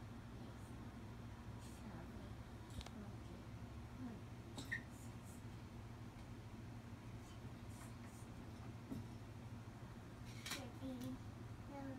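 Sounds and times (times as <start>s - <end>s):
room hum: 0.0s - 11.9s.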